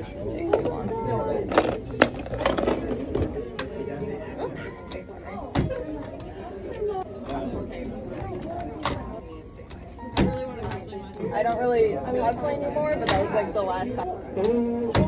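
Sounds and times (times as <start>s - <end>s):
chatter of voices: 0.0s - 15.0s.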